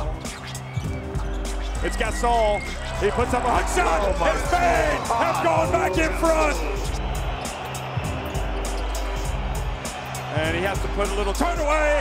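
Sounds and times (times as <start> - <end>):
music with pulsing bass: 0.0 - 11.8.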